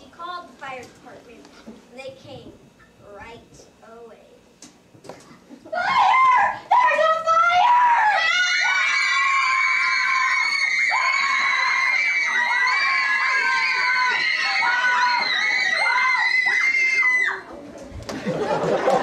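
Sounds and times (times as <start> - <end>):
children screaming: 5.7 - 17.5.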